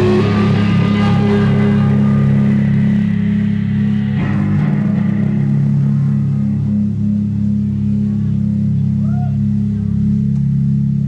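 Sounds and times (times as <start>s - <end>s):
cymbal wash: 0.0s - 11.0s
electric guitar and bass ringing: 0.0s - 11.0s.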